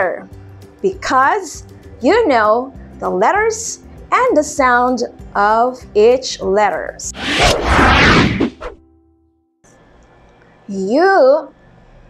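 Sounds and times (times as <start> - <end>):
transition whoosh: 7.1 - 8.8.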